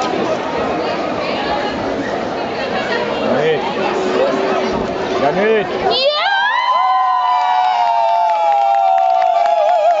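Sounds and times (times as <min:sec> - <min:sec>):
spectators cheering and screaming: 0:05.8 - 0:10.0
people clapping: 0:07.1 - 0:10.0.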